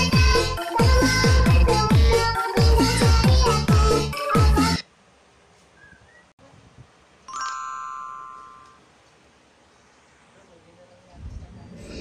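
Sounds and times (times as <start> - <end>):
bell-like chime: 7.3 - 8.8.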